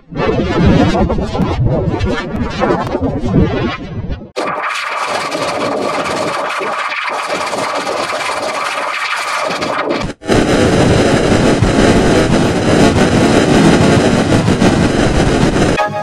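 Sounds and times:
distorted noisy jingle: 9.3 - 16.0.

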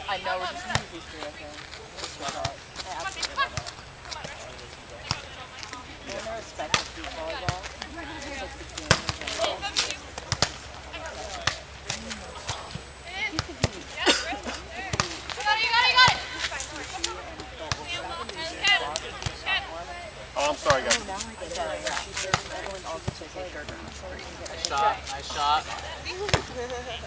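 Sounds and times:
players calling out: 2.1 - 27.0
hands slapping volleyball: 8.8 - 10.6.

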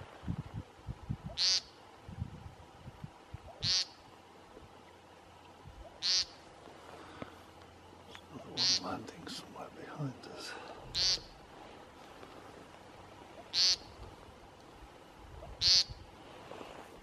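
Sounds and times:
bird's nasal buzzy call: 1.3 - 1.8, 3.5 - 4.0, 5.9 - 6.4, 8.6 - 8.9, 10.9 - 11.4, 13.4 - 14.0, 15.4 - 16.0.

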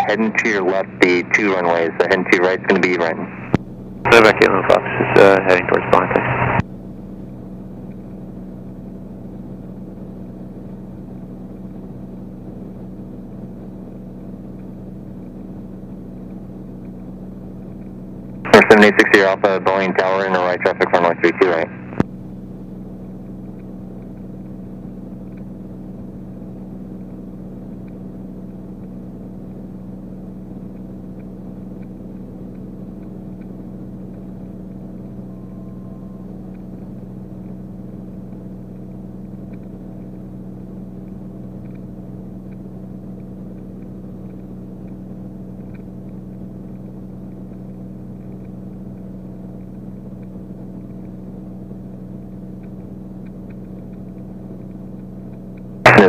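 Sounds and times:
propeller plane engine droning: 0.0 - 56.0.

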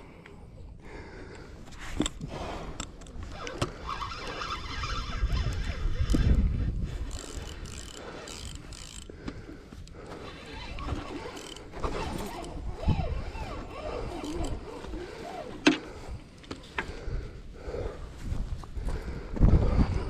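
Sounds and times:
fishing reel cranking: 3.0 - 9.2, 9.8 - 16.2.

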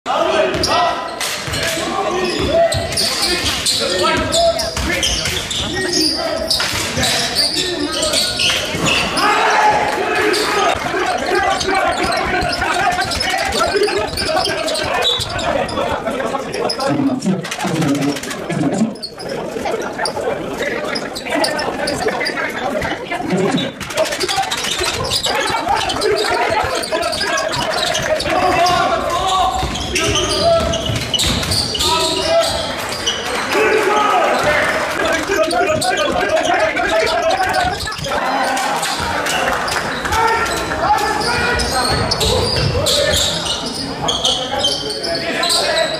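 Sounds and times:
indistinct voices: 0.1 - 45.9
basketball bouncing on hall floor: 1.4 - 15.6, 22.7 - 33.2, 38.8 - 43.4
basketball bouncing on wooden floor: 29.6 - 31.8.

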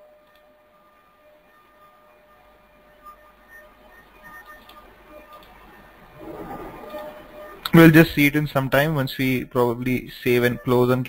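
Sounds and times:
thin steady whine: 0.0 - 11.0.

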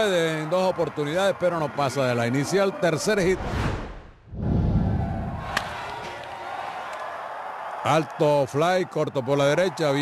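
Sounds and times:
whoosh into deep boom: 3.3 - 5.6
ballpark ambience: 5.0 - 10.0.

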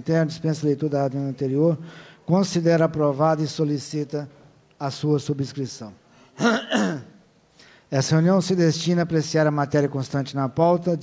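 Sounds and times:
man clearing his throat: 6.4 - 7.2.

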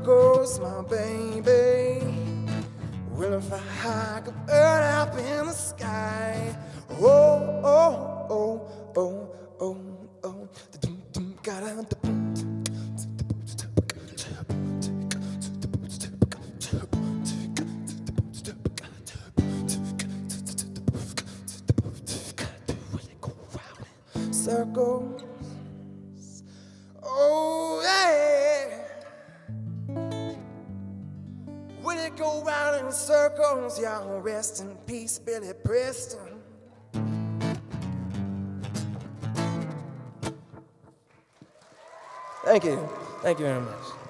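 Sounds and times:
person singing: 0.0 - 26.4, 27.0 - 29.5, 31.8 - 36.6
popping beatbox syllables: 12.0 - 24.1
amplified guitar strumming chords: 29.5 - 32.3, 36.9 - 40.7.

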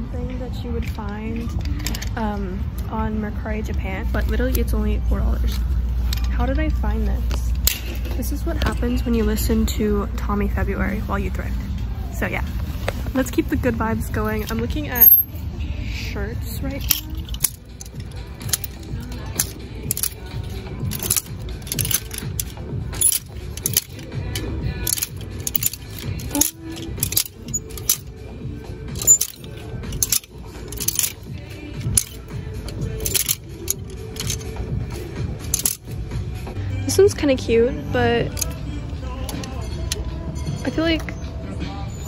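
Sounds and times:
background music: 0.0 - 42.0
plastic hangers clicking: 1.4 - 2.9, 16.6 - 36.0, 38.3 - 38.6, 39.2 - 40.0.

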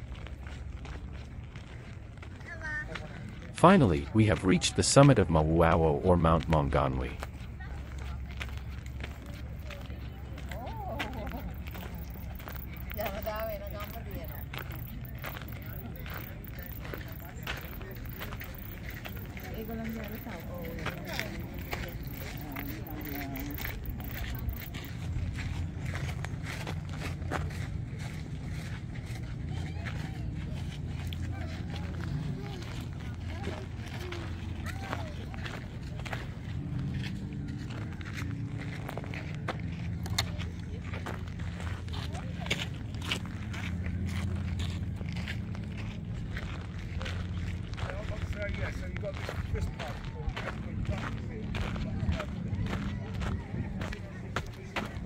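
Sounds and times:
people talking: 0.0 - 55.0
steady low rumble: 0.0 - 55.0.

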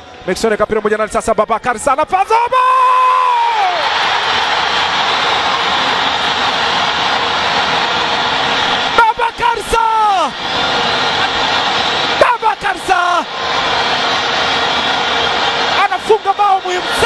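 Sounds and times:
crowd cheering: 2.1 - 17.0
commentator shouting goal call: 9.0 - 10.3, 12.2 - 13.2.

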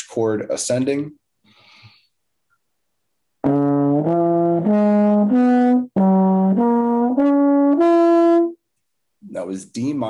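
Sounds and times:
trombone arpeggio: 3.4 - 8.6.

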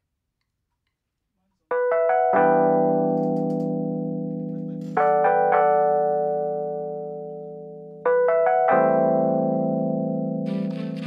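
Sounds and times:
keyboard chords: 1.7 - 11.0.

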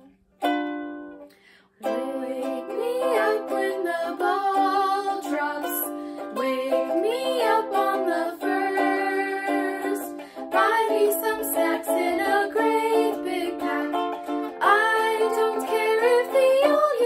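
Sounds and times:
musical accompaniment: 0.0 - 17.0
young woman singing: 1.8 - 17.0.

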